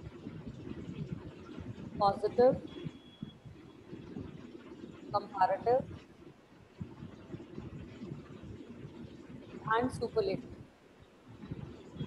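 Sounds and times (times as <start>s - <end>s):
microphone background noise: 0.0s - 12.0s
soft low thumps: 0.0s - 12.0s.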